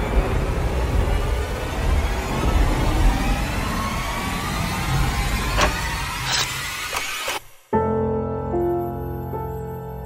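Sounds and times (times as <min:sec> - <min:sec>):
deep noisy drone: 0:00.0 - 0:06.8.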